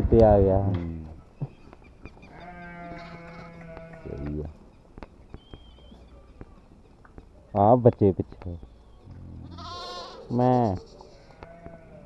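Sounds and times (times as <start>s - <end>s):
sheep bleating: 2.3s - 4.4s, 9.1s - 12.0s.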